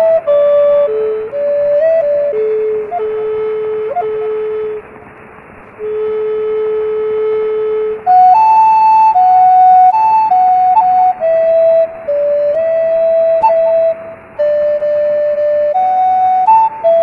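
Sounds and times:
flute playing slow melody: 0.0 - 17.0
steady hiss: 0.0 - 17.0.

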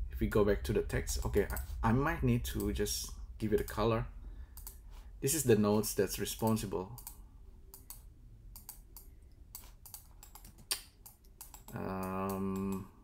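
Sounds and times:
mouse and keyboard clicks: 8.6 - 12.8
man saying uhh: 11.7 - 13.0.

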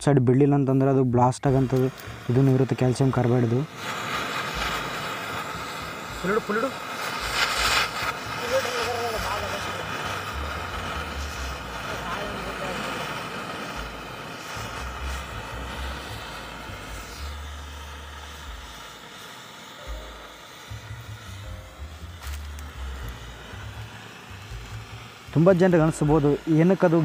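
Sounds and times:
gas flame hissing: 1.4 - 27.0.

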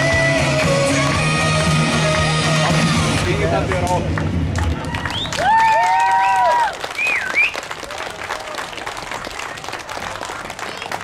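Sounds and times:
audience applauding: 2.2 - 11.0
high cheering calls: 4.8 - 7.6
short wavering whistle: 7.0 - 7.6.

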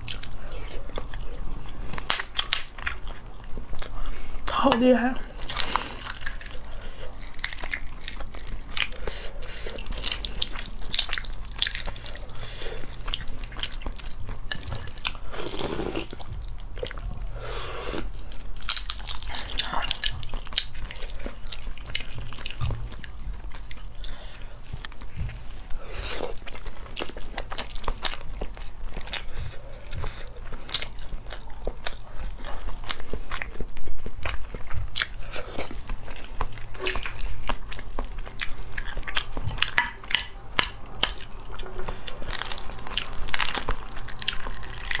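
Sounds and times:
close chewing with wet mouth sounds: 0.0 - 45.0.

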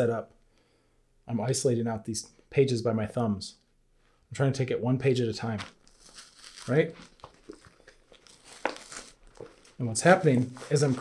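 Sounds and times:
paper pages tearing and crinkling: 5.6 - 11.0.

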